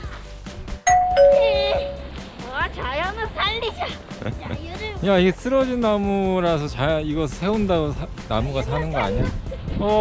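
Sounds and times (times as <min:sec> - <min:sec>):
two-note doorbell chime: 0:00.9 - 0:02.1
child's voice: 0:02.4 - 0:05.0, 0:08.6 - 0:09.7.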